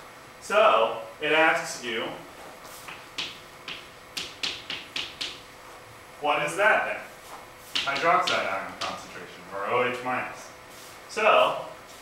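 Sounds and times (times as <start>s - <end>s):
chalk tapping on blackboard: 2.6s - 5.5s, 7.3s - 9.1s.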